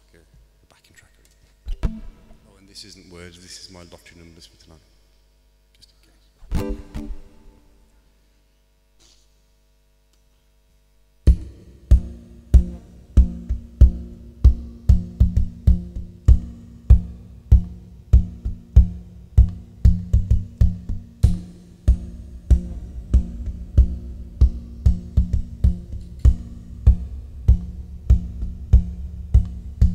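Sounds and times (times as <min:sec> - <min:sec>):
sharp low knocks on guitar: 0:01.7 - 0:02.5, 0:06.5 - 0:07.7, 0:11.3 - 0:29.9
looped acoustic guitar groove: 0:06.5 - 0:07.6, 0:11.3 - 0:29.9.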